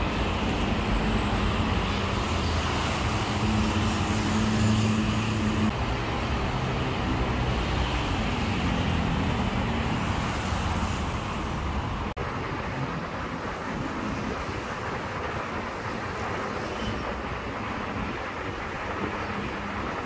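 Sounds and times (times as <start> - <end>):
road traffic passing: 0.0 - 20.0.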